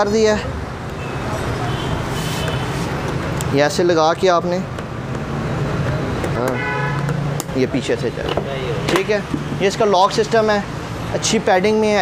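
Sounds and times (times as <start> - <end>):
road traffic hum: 0.0 - 12.0
vehicle horn: 6.5 - 7.1.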